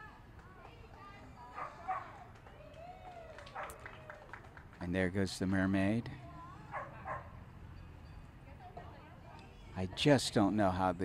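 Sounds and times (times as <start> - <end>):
quiet crowd chatter: 0.0 - 11.0
dog barking: 1.6 - 2.2, 6.7 - 7.3
dog yipping: 6.7 - 7.3.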